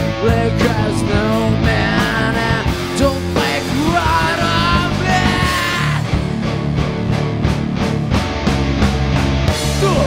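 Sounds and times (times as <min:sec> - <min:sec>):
drum kit steady beat: 0:00.0 - 0:10.0
electric bass: 0:00.0 - 0:10.0
electric guitar: 0:00.0 - 0:10.0.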